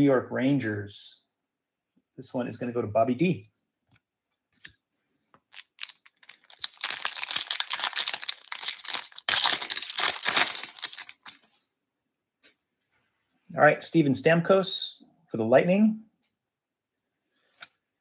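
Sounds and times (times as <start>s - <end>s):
card pack wrapper tearing: 5.5s - 11.5s.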